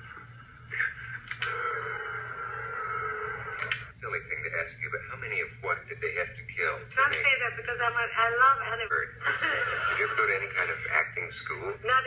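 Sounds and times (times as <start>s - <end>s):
indistinct television voices: 0.0s - 12.0s.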